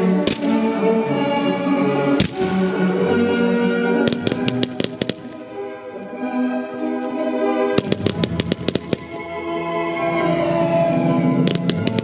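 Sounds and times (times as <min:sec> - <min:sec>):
classical orchestral music: 0:00.0 - 0:12.0
fireworks bangs: 0:00.2 - 0:00.9, 0:02.2 - 0:02.8, 0:04.1 - 0:05.6, 0:07.8 - 0:09.4, 0:11.5 - 0:12.0.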